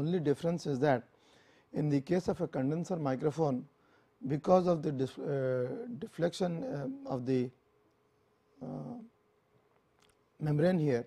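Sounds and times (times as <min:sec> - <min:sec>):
man saying uh: 0:04.3 - 0:07.5, 0:08.6 - 0:09.1.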